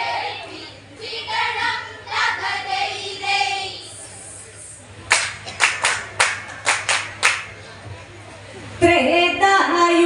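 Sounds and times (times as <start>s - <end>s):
group clapping in unison: 5.1s - 7.6s.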